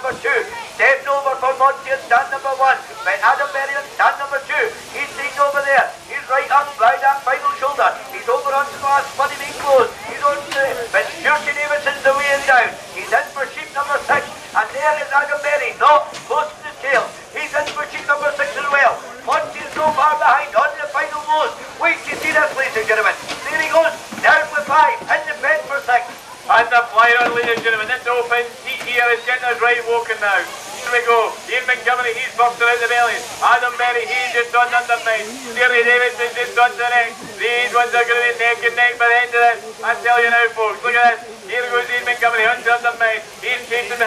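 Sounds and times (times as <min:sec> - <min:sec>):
commentator speaking fast: 0:00.0 - 0:44.0.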